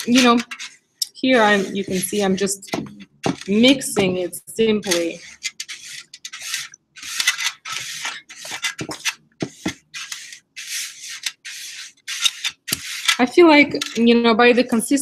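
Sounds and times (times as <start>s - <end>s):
rubbing and scraping paint paste: 0.0s - 14.2s.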